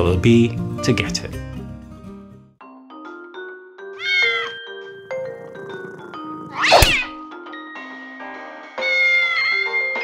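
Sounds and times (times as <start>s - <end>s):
background music: 0.0s - 10.0s
cat meowing: 4.0s - 4.6s, 8.8s - 9.8s.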